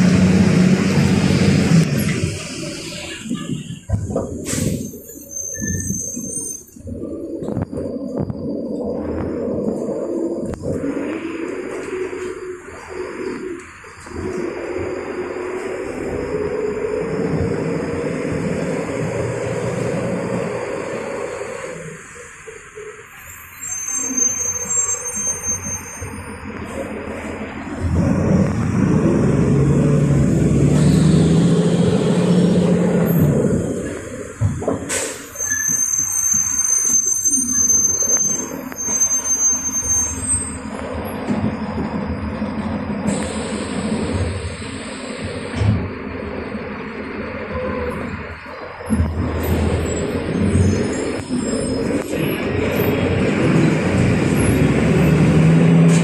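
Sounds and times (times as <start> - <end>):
bus diesel engine: 0.0 - 56.0
thin high squeals: 4.6 - 6.9, 23.1 - 26.5, 34.9 - 40.7.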